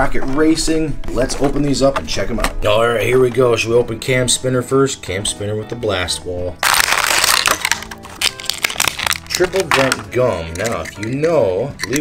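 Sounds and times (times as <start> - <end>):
plastic blister pack crackling: 6.6 - 10.9.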